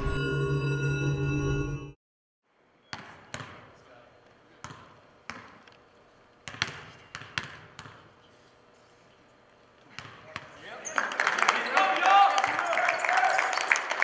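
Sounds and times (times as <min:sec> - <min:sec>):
basketballs bouncing on gym floor: 0:02.9 - 0:03.8, 0:04.6 - 0:05.7, 0:06.4 - 0:08.1, 0:09.9 - 0:10.6.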